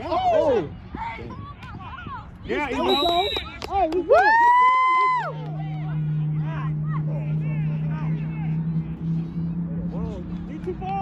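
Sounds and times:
distant shouting and chatter: 0:00.0 - 0:11.0
low hum: 0:04.2 - 0:11.0.

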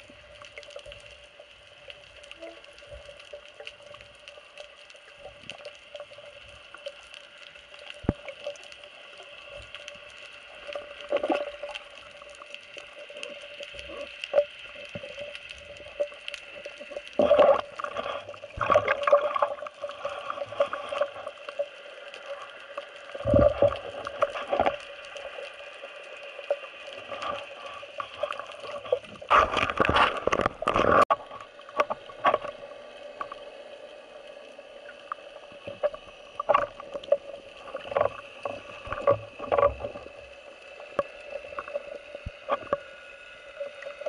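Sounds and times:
underwater swishes and knocks: 0:02.0 - 0:33.5, 0:34.9 - 0:43.0.

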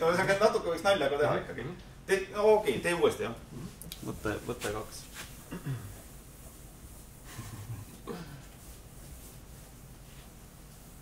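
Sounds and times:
eraser rubbing on whiteboard: 0:04.0 - 0:11.0.

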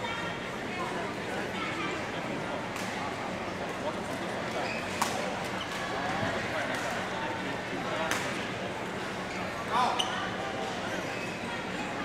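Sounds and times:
people chattering: 0:00.0 - 0:12.0
shoe squeal: 0:04.6 - 0:05.0, 0:09.2 - 0:11.5.

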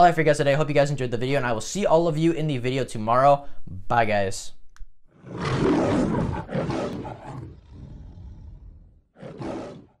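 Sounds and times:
lion roaring: 0:05.1 - 0:10.0.

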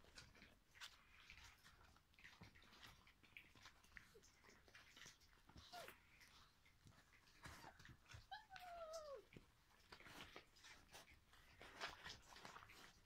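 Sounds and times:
clicks of puppies moving: 0:00.0 - 0:13.0
puppy whining: 0:03.6 - 0:11.0.

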